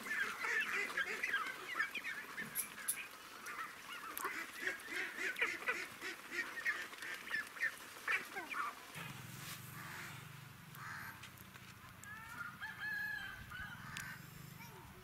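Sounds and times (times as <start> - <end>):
ducklings peeping: 0.0 - 8.8.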